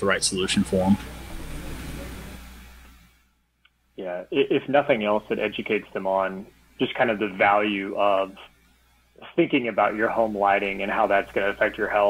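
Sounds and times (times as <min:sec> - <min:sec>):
background hiss: 0:00.0 - 0:12.0
low hum: 0:00.0 - 0:12.0.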